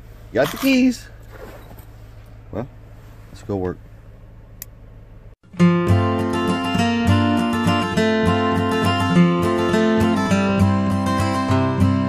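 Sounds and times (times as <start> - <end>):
steady low hum: 0.0 - 5.4.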